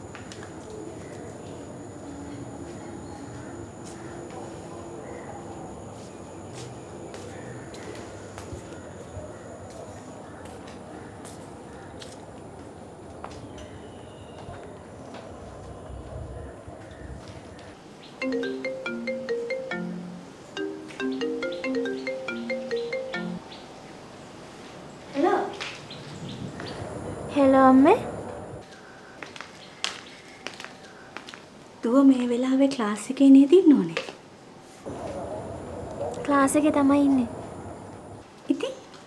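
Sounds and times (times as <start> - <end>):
outdoor ambience: 0.0 - 39.0
marimba ringtone: 18.2 - 23.4.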